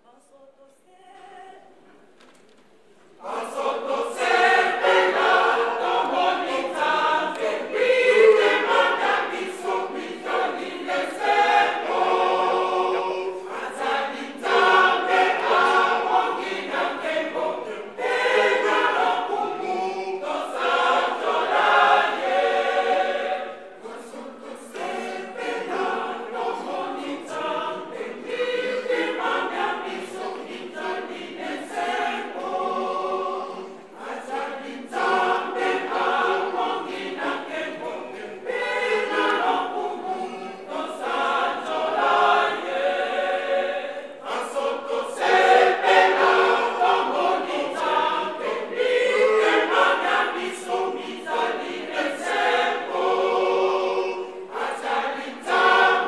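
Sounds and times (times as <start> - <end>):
choir singing a hymn: 3.1 - 56.0.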